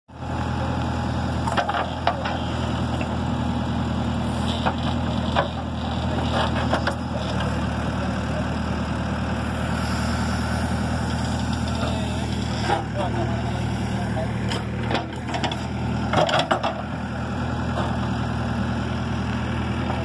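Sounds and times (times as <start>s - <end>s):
diesel engine running: 0.1s - 20.0s.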